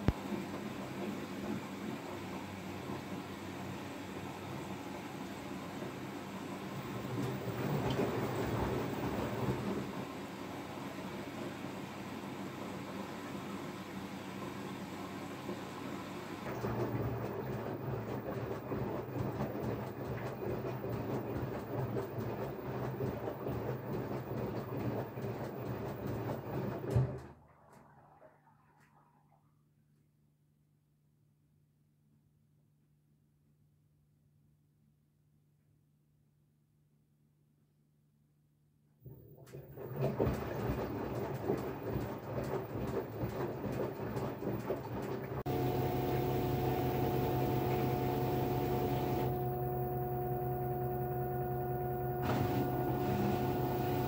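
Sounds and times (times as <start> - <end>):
washing machine rumbling and rattling: 0.0 - 11.7, 15.4 - 28.8, 39.1 - 54.0
washing machine drum clattering: 39.5 - 49.5.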